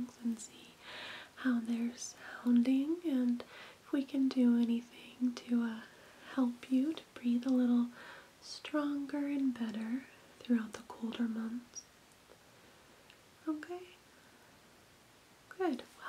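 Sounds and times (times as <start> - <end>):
woman talking softly: 0.0 - 0.7, 1.4 - 11.8, 13.4 - 14.0, 15.5 - 16.0.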